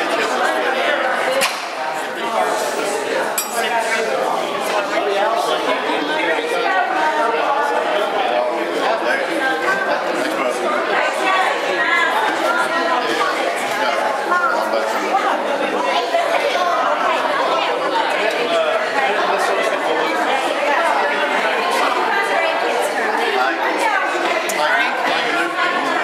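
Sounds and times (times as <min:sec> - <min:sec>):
crowd chattering indoors: 0:00.0 - 0:26.0.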